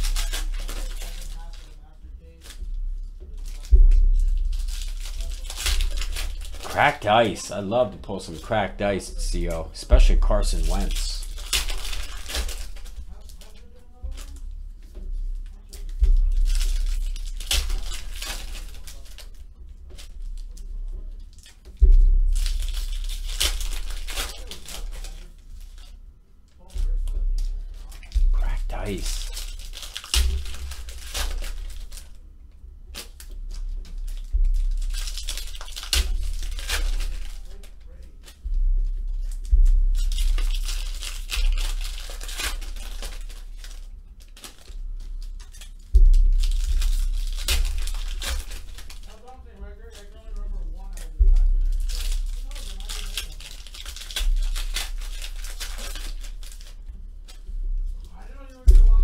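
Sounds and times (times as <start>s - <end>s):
cards being shuffled: 0.0s - 25.9s, 26.7s - 32.2s, 32.9s - 59.0s
foil wrappers crinkling and tearing: 0.0s - 32.3s, 32.9s - 59.0s.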